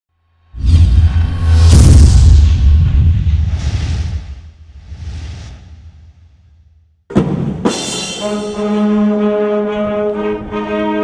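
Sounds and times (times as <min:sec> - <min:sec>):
rushing whoosh: 0:00.6 - 0:06.4
deep rumble: 0:00.6 - 0:06.7.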